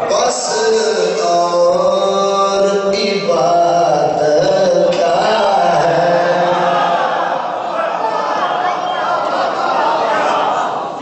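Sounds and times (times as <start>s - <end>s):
man chanting into a microphone: 0.0s - 7.1s.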